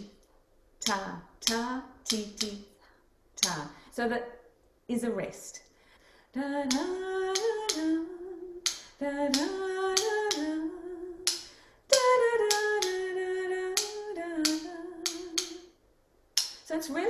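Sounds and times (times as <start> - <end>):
sharp clicks tapping a beat: 0.8 - 2.6, 3.4 - 3.8, 6.7 - 15.7, 16.4 - 16.7
woman singing held notes: 0.8 - 4.2, 6.4 - 15.7.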